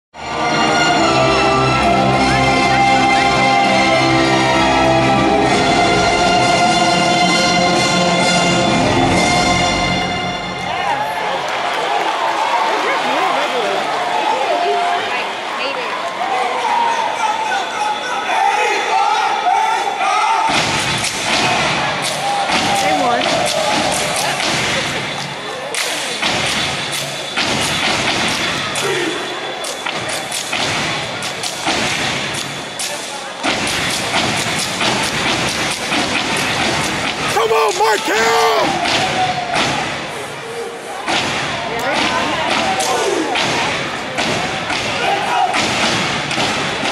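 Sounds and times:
crowd shouting and cheering: 0.2 - 46.9
rhythmic stomps and claps: 20.5 - 28.9, 29.6 - 40.0, 41.1 - 46.9.

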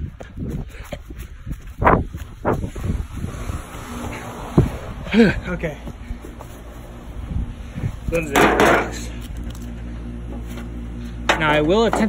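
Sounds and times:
wind rumble on microphone: 0.0 - 8.4.

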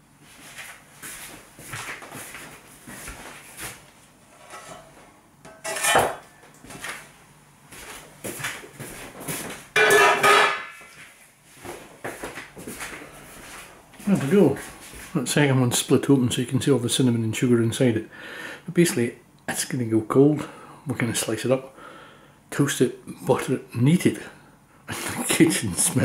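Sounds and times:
loud metal clanks: 9.8 - 10.8
metal bread tin clattering: 9.8 - 10.8.

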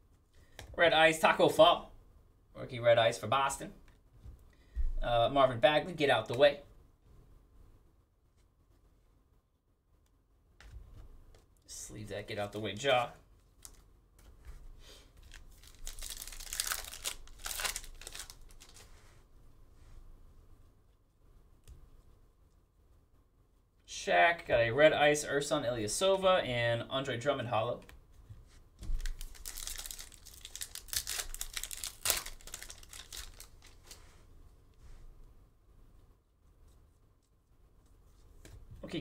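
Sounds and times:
foil wrapper tearing: 15.2 - 18.9, 29.0 - 34.0.

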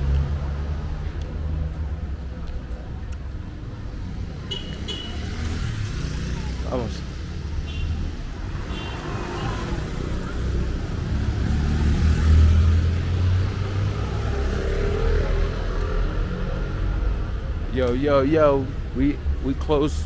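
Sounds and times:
street traffic rumble: 0.0 - 20.0.

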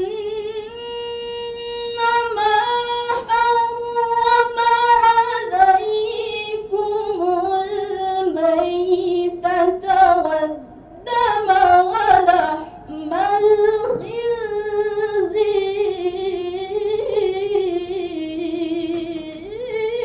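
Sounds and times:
girl reciting melodically: 0.0 - 20.0.

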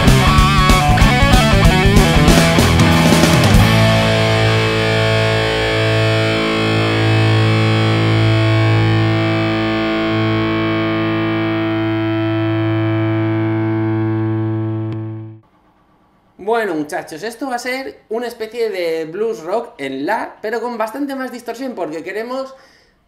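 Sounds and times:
distorted electric guitar chord: 0.0 - 15.4.

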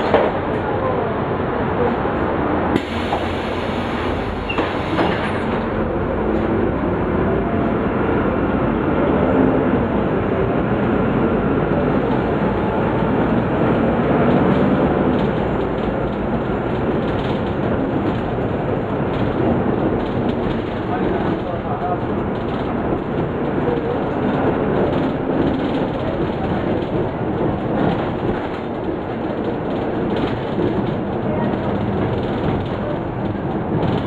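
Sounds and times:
road rumble: 0.0 - 34.0
bus diesel engine droning: 2.7 - 34.0.

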